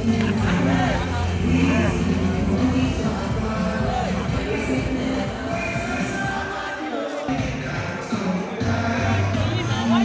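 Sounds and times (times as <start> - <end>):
person singing: 0.0 - 10.0.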